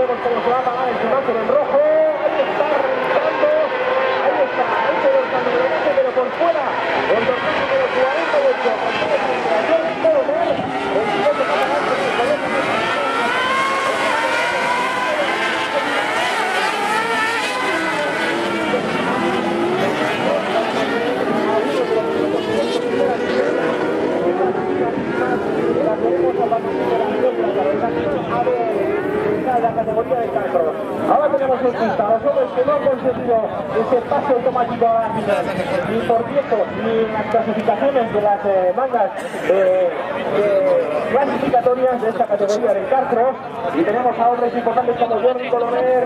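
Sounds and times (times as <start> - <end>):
buggy engines revving: 0.0 - 46.0.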